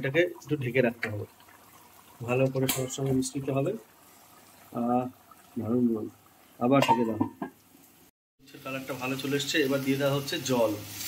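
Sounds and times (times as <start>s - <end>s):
pot lid clinking on metal pot: 6.8s - 7.6s.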